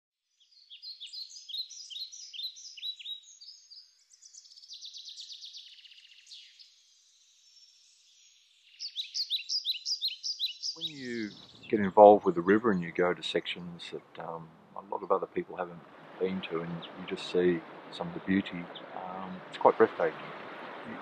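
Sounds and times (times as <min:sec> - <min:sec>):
birds chirping: 0:00.5 - 0:21.0.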